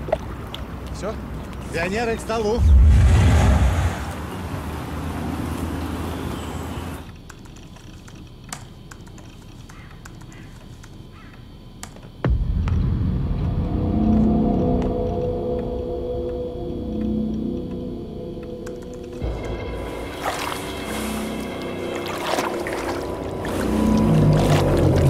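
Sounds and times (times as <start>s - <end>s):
deep boom: 2.6s - 4.3s, 12.2s - 15.8s
music with held tones: 13.2s - 25.0s.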